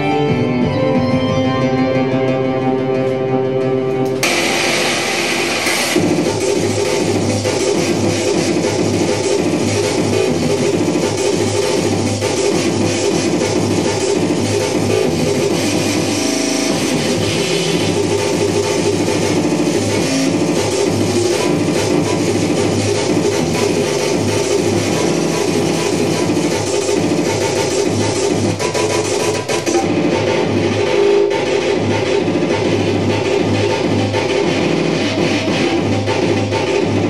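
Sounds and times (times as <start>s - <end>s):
organ-like keyboard chords: 0.0s - 5.2s.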